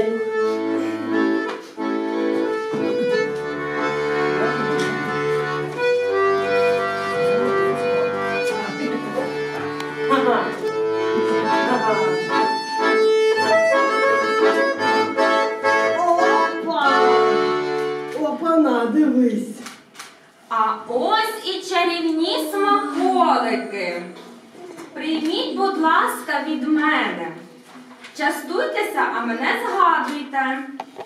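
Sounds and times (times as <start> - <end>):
accordion melody with bass notes: 0.0 - 18.4.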